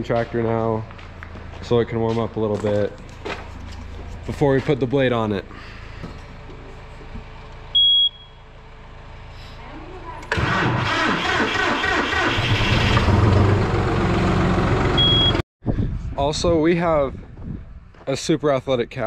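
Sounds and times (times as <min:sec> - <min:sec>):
tractor warning beep: 0:07.7 - 0:08.4, 0:15.0 - 0:15.4
tractor engine cranking and running: 0:10.2 - 0:15.0.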